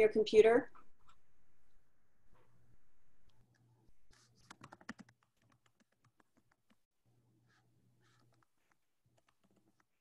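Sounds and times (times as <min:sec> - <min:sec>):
computer keyboard typing: 0:04.2 - 0:06.8, 0:08.0 - 0:10.0.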